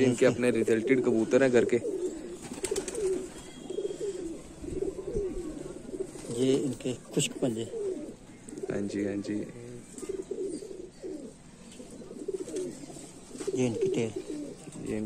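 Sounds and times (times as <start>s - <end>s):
pigeons cooing: 0.0s - 15.0s.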